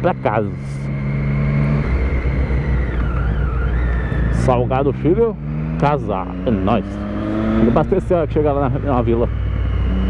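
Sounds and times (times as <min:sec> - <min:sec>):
faint whine: 0:00.0 - 0:10.0
motorcycle engine: 0:00.0 - 0:10.0.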